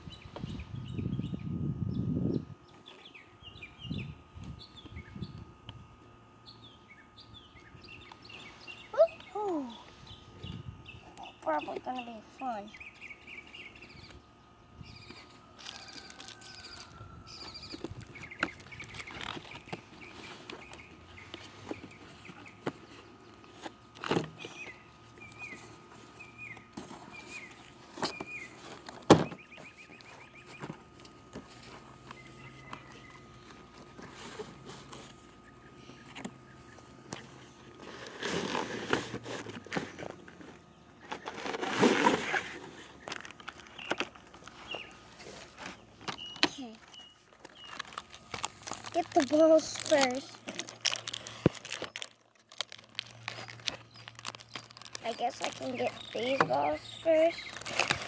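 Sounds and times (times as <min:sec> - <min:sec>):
bird chirping: 0:12.7 - 0:15.4, 0:45.7 - 0:48.0, 0:53.3 - 0:57.6
plastic packaging rustling: 0:15.5 - 0:24.6, 0:37.2 - 0:58.0.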